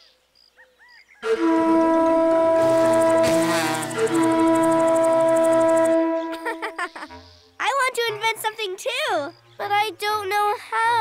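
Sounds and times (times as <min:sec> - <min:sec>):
toy horn blowing: 0:01.2 - 0:06.8.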